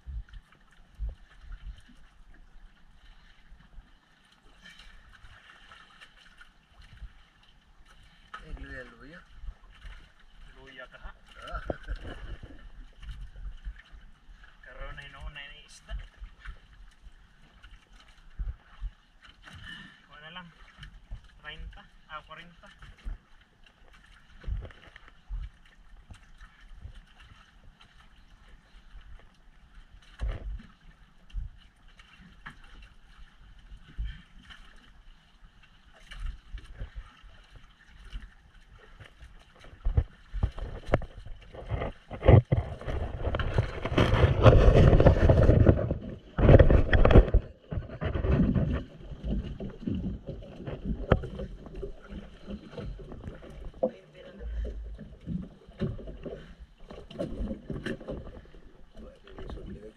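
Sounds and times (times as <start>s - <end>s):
water noise: 0.0s - 59.9s
wind: 0.0s - 59.9s.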